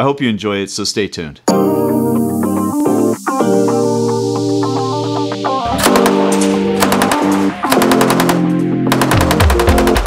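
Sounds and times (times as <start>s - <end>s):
machine gun firing bursts: 5.9s - 10.0s.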